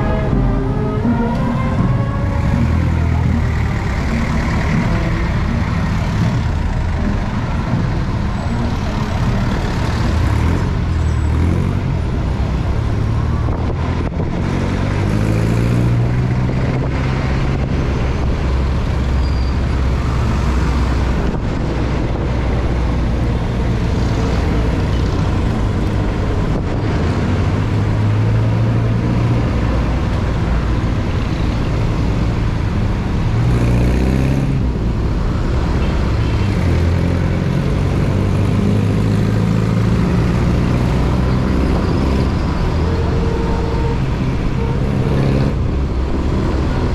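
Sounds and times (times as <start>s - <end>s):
traffic engines: 0.0s - 46.9s.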